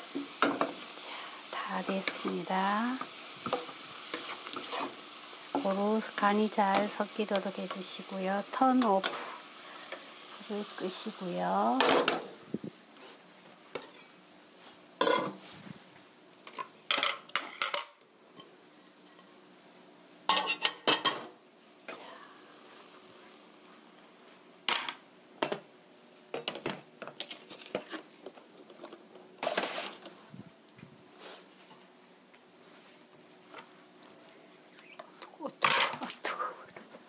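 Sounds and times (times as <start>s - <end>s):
wooden spoon scraping frying pan: 0.1s - 7.8s, 27.2s - 30.2s.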